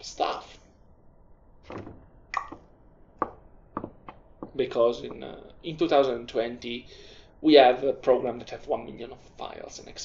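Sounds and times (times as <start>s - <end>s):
faint room background: 0.0s - 10.0s.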